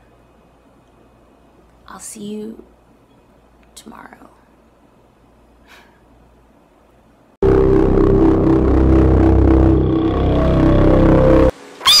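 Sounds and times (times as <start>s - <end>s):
droning outro sting: 7.4s - 11.7s.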